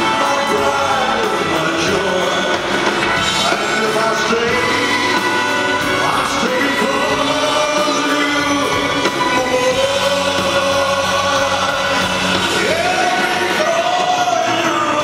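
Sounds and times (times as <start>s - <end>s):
live band with bass and drums: 0.0s - 15.0s
man singing into microphone: 0.0s - 15.0s.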